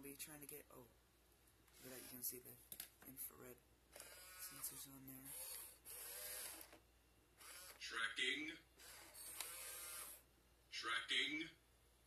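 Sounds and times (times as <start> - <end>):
toy robot motors whirring: 3.9 - 6.8, 7.4 - 7.8, 8.8 - 10.2.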